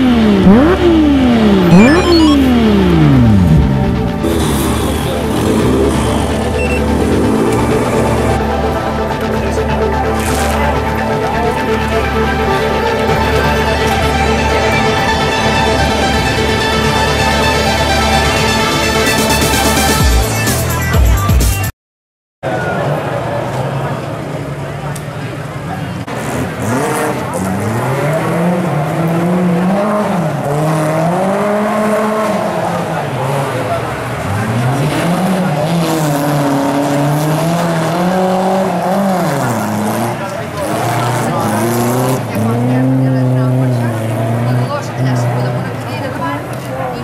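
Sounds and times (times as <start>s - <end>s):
rally car engine revving: 0.0s - 19.8s, 25.8s - 47.0s.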